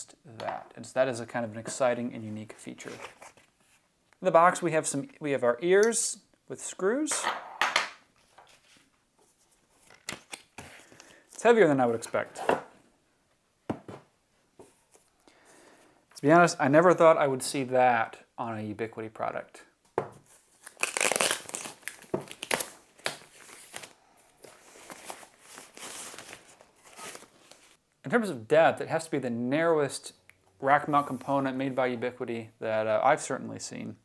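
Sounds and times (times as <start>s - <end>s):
plastic wrap rustling and crinkling: 20.2s - 27.8s.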